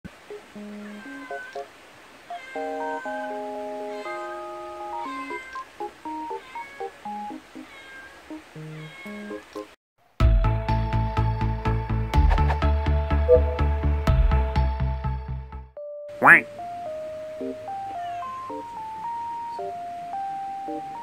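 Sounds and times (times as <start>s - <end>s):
cat meowing: 0.7s - 1.7s, 2.3s - 7.0s, 7.6s - 9.4s, 17.9s - 18.8s
light background music: 11.0s - 14.6s, 16.2s - 21.0s.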